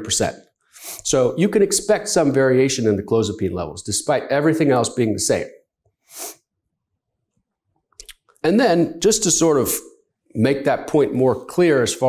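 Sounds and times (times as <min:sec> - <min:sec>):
man's sharp intake of breath: 0:06.1 - 0:06.4
faint mouth click: 0:08.0 - 0:08.4.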